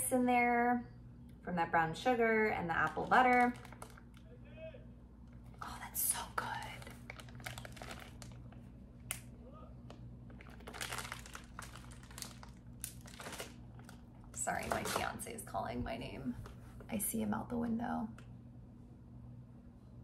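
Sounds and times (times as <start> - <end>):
plastic bag crinkling: 2.6 - 4.3, 5.4 - 9.2, 9.9 - 15.4.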